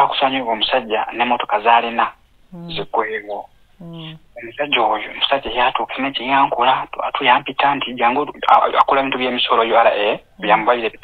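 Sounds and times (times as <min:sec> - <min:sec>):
person talking over telephone: 0:00.0 - 0:11.0.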